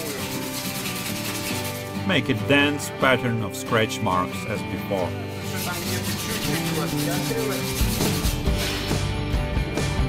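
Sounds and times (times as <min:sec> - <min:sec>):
sandpaper rubbing on metal: 0:00.0 - 0:02.0, 0:05.0 - 0:09.0
background music: 0:00.0 - 0:10.0.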